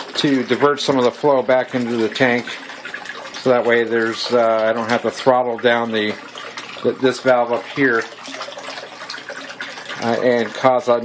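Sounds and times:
pumped water running and splashing: 0:00.0 - 0:11.0.

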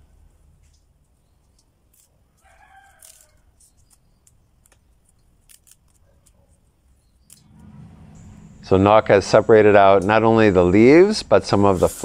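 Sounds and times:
leaves snapping into metal bowl: 0:01.6 - 0:06.4.

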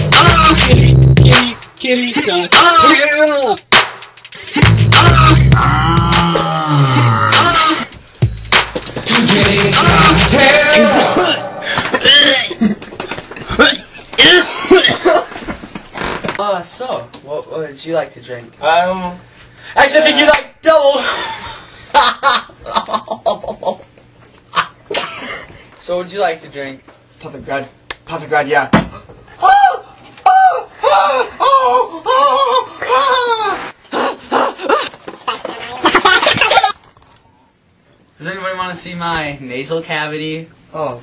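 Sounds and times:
young man raspy vocal outbursts: 0:04.6 - 0:07.9, 0:09.9 - 0:12.6, 0:13.5 - 0:15.0.

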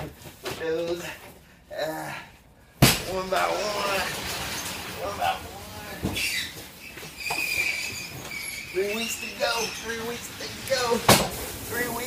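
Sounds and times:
conveyor rollers rattling: 0:03.1 - 0:12.0.

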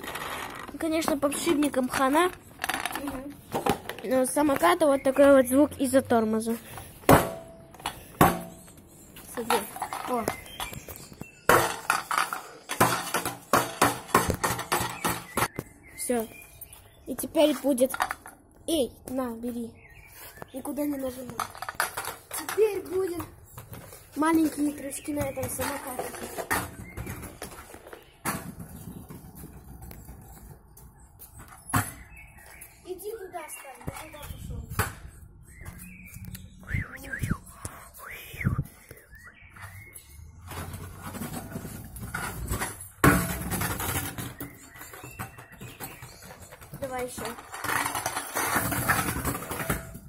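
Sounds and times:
scooter wheels rumbling on paving: 0:00.0 - 0:06.8, 0:20.9 - 0:30.9, 0:39.7 - 0:50.0.

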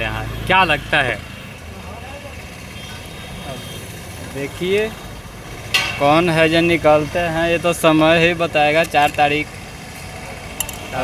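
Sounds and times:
traffic engine rumble: 0:00.0 - 0:11.0.

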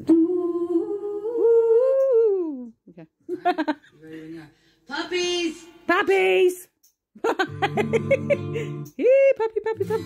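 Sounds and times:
woman humming: 0:00.0 - 0:03.0.

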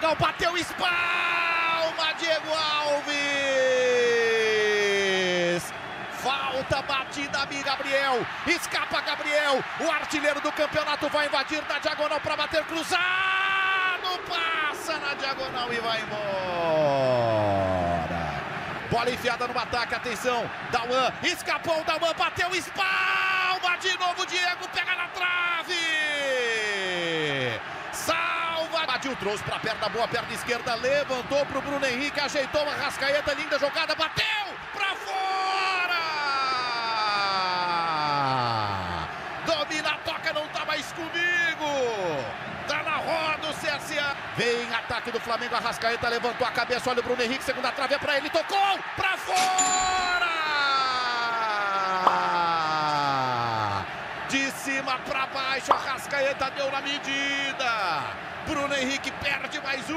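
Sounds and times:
commentator long shout: 0:00.0 - 0:05.6, 0:06.2 - 0:18.5, 0:21.2 - 0:29.3, 0:32.3 - 0:40.2, 0:41.1 - 0:58.1
stadium crowd noise: 0:00.0 - 0:59.9.

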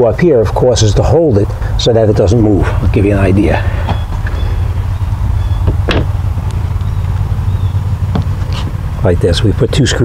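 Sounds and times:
steady low rumble: 0:00.0 - 0:10.0
light knocks: 0:05.6 - 0:06.2, 0:08.1 - 0:08.8.

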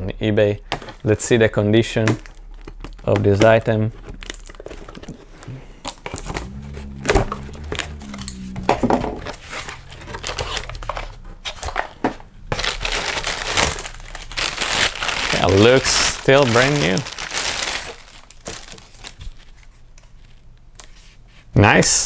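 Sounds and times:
plastic bag crinkling: 0:04.0 - 0:08.2, 0:09.2 - 0:20.4.

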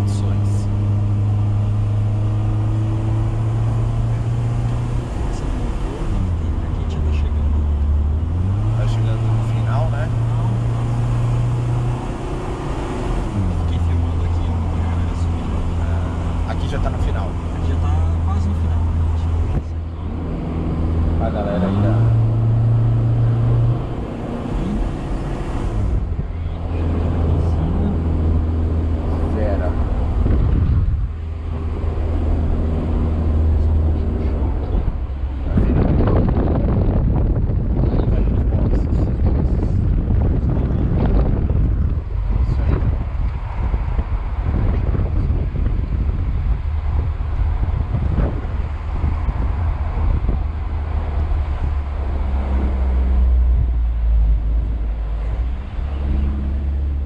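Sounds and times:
car engine from inside cabin: 0:00.0 - 0:57.0
tyre and wind rumble: 0:05.9 - 0:57.0.

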